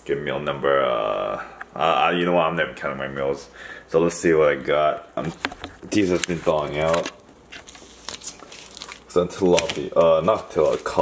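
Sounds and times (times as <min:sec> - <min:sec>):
plastic bag crinkling: 0:05.3 - 0:11.0.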